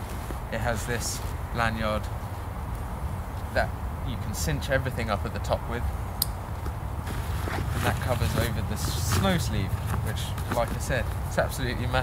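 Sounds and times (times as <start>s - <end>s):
fabric rustling: 7.0s - 11.3s.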